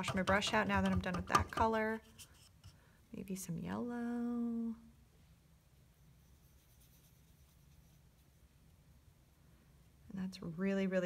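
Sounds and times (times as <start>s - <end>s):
low room hum: 0.0s - 11.0s
paintbrush scratching on paper: 6.0s - 8.4s.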